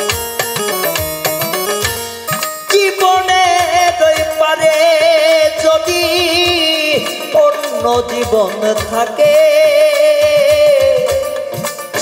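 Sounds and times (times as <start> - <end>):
folk band accompaniment: 0.0 - 12.0
quick steady drum beat: 0.0 - 12.0
man singing with vibrato: 2.1 - 12.0.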